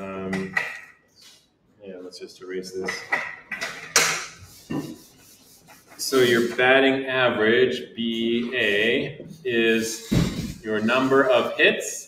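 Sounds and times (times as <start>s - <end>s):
eraser rubbing on board: 4.3s - 6.6s, 9.9s - 11.6s.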